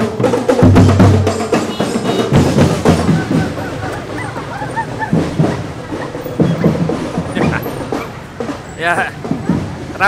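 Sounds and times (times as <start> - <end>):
marching band drums: 0.0 - 10.0
noisy crowd: 0.0 - 10.0.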